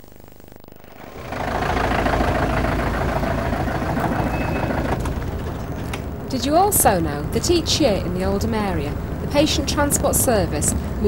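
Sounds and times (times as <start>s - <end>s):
ambulance engine starting and running: 0.8s - 11.0s.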